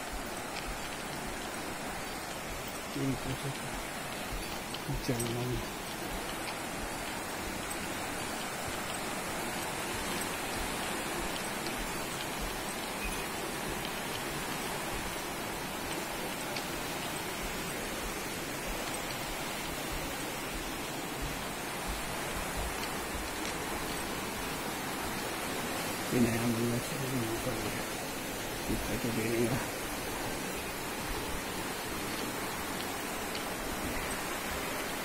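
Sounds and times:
water rushing: 0.0s - 35.0s.

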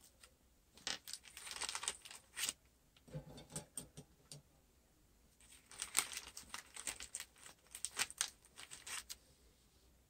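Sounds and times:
plastic bag crinkling: 0.8s - 2.6s, 5.4s - 9.2s.

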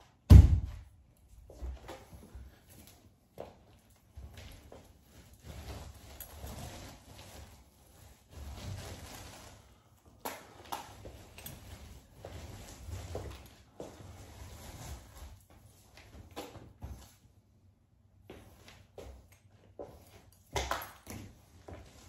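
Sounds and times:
paint roller rolling on wall: 1.2s - 17.4s, 18.2s - 22.0s.

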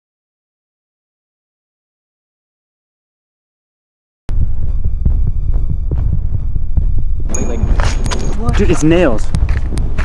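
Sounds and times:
low throbbing rumble: 4.3s - 10.0s.

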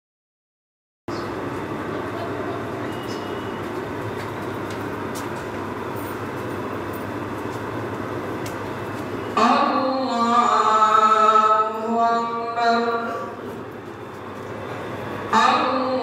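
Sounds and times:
crowded hall rumble: 1.1s - 16.0s.

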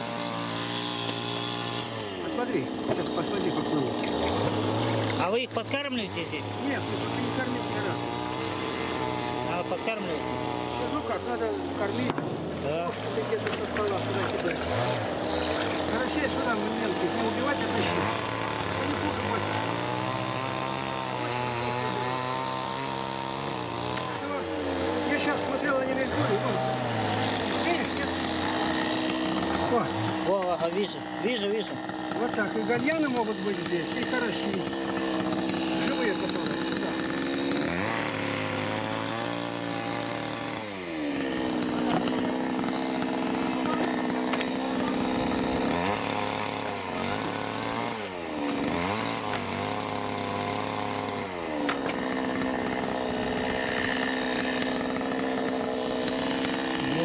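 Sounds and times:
small engine running steadily: 0.0s - 57.0s.

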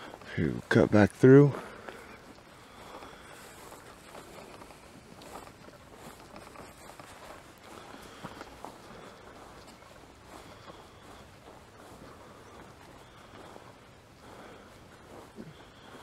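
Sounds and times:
footsteps in dry grass: 0.0s - 16.0s.

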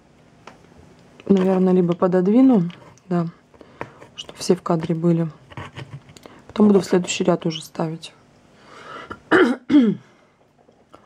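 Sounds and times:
woman clearing her throat: 9.2s - 10.1s.

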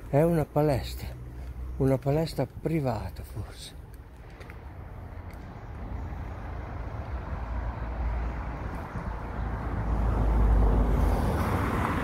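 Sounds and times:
low traffic rumble: 0.0s - 12.0s
vehicle passing: 4.2s - 12.0s.

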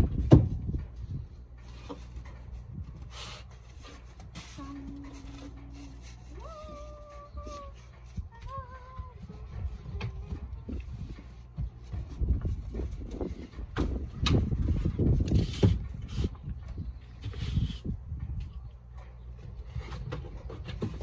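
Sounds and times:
dog whining: 6.4s - 7.9s.

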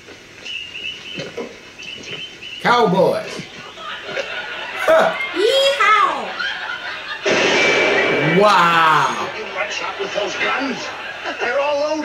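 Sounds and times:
high chirping animal calls: 0.4s - 4.0s.

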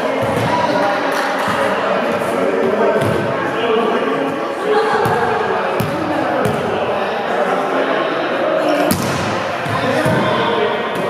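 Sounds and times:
players chatter: 0.0s - 11.0s
volleyball smacks echoing: 8.9s - 10.3s.

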